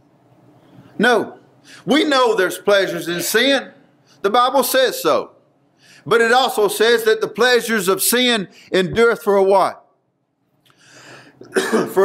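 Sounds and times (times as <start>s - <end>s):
man speaking: 1.0s - 5.4s, 6.0s - 9.9s
man clearing his throat: 11.4s - 12.0s.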